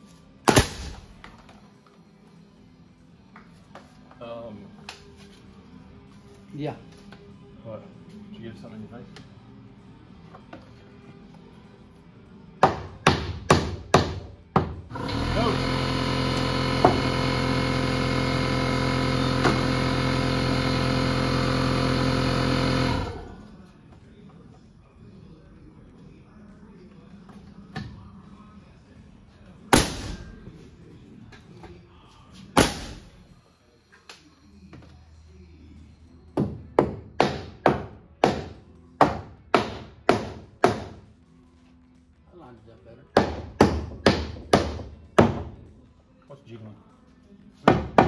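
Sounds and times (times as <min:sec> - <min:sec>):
pneumatic nailer firing: 0:00.4 - 0:01.1, 0:14.9 - 0:23.3, 0:32.6 - 0:33.1
air compressor motor running: 0:14.9 - 0:23.5.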